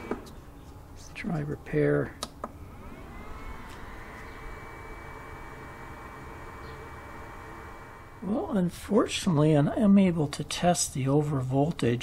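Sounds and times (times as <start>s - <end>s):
charger whirring: 1.8s - 9.7s.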